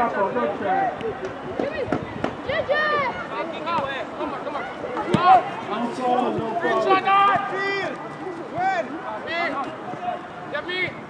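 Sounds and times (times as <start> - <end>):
voices shouting and calling: 0.0 - 11.0.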